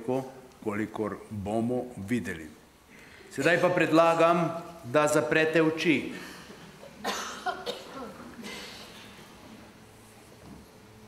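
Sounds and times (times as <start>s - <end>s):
people coughing: 6.2s - 9.5s.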